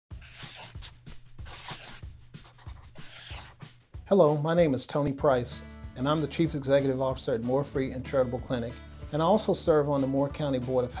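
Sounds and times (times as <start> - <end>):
pen scribbling: 0.2 - 3.7.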